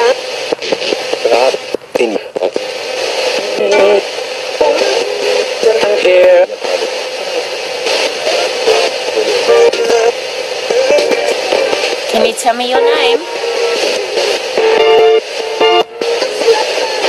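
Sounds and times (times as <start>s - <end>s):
radio static hiss: 0.0s - 17.0s
snatches of broadcast voices: 0.0s - 17.0s
snatches of radio music: 0.0s - 17.0s.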